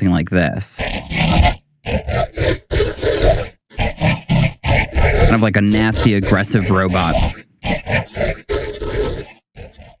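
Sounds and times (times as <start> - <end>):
harsh gritty robot voice: 0.0 - 10.0.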